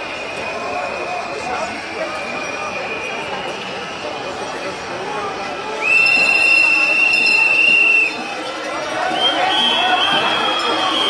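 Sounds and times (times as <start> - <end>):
murmur of marching crowd: 0.0 - 11.0
loud high-pitched whistle: 5.8 - 8.2, 9.1 - 11.0.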